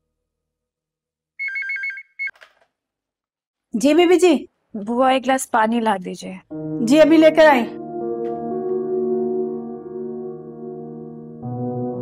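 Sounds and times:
intercom phone ringing: 0:01.4 - 0:02.3.

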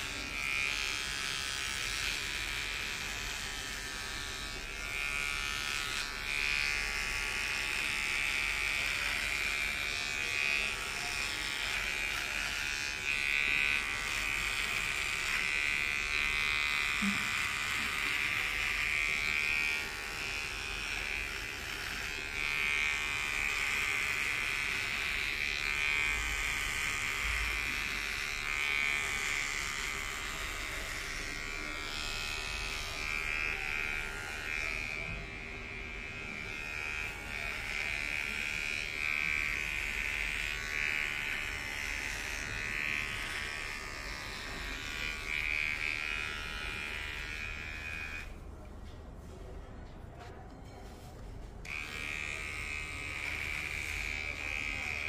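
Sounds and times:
electric hair clipper buzzing: 0:00.0 - 0:48.4, 0:51.6 - 0:55.0.

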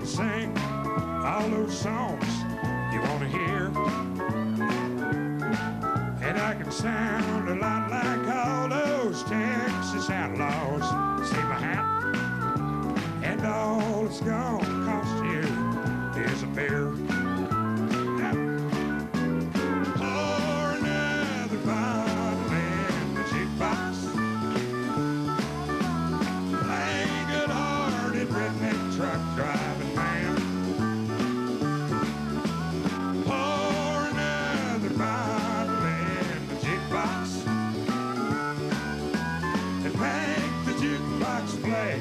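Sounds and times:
country-rock band instrumental: 0:00.0 - 0:42.0
electric guitar bending lead notes: 0:00.0 - 0:42.0.

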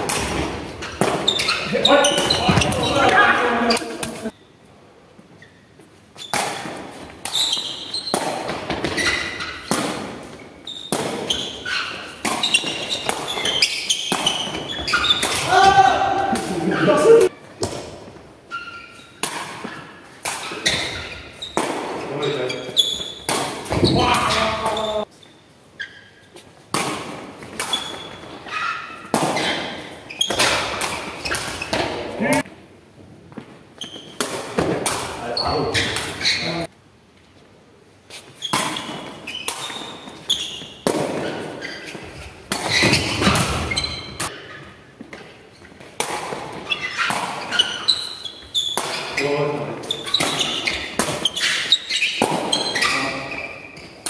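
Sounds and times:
ball impacts echoing in a hall: 0:00.0 - 0:54.0.

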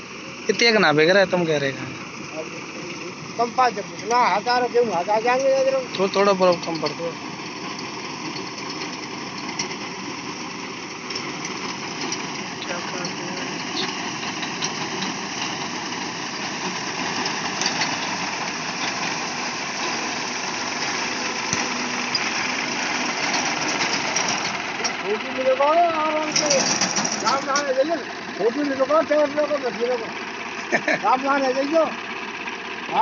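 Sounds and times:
tractor engine running: 0:00.0 - 0:33.0
cutter bar and conveyor clatter: 0:02.8 - 0:09.8, 0:11.1 - 0:30.0.

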